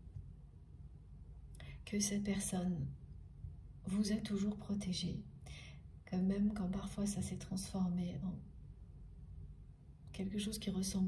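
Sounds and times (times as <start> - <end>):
faint low room hum: 0.0 - 11.0
woman speaking: 1.8 - 3.0, 3.9 - 5.3, 6.1 - 8.4, 10.1 - 11.0.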